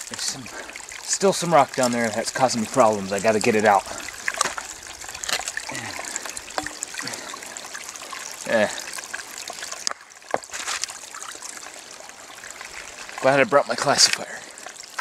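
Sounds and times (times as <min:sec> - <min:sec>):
stream trickling: 0:00.0 - 0:15.0.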